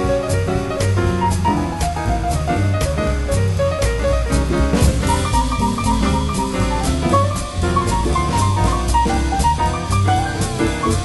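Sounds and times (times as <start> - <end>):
drum kit steady beat: 0.0 - 11.0
swing jazz band playing: 0.0 - 11.0.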